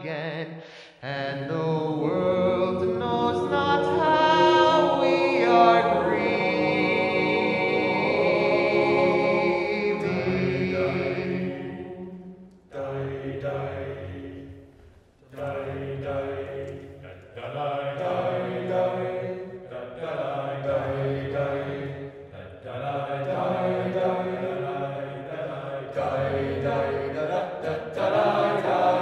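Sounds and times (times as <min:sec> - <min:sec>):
men's choir singing: 0:01.6 - 0:14.7, 0:15.3 - 0:29.0.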